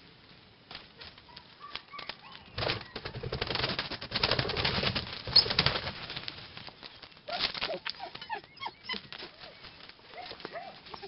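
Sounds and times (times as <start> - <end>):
birds flapping wings: 0.7 - 7.8.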